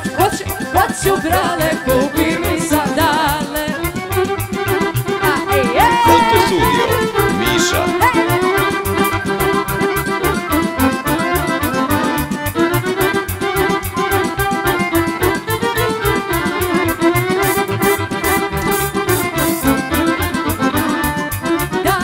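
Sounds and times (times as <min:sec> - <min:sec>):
accordion melody: 0:00.0 - 0:22.0
rhythm section beat: 0:05.2 - 0:09.6, 0:14.8 - 0:20.9.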